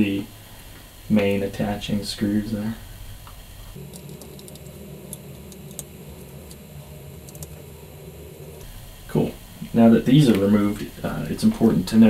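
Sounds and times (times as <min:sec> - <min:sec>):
low steady hum: 0:00.0 - 0:12.0
screwdriver and screws clicking: 0:03.9 - 0:04.8.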